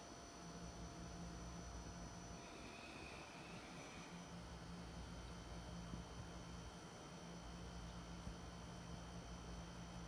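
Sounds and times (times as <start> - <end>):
faint high whine: 0.0 - 10.0
faint low hum: 0.0 - 10.0.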